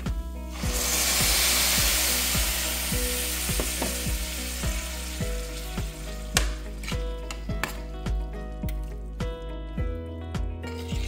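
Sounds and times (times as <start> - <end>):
water poured into hot pan: 0.5 - 6.2
meat sizzling loudly: 0.5 - 6.6.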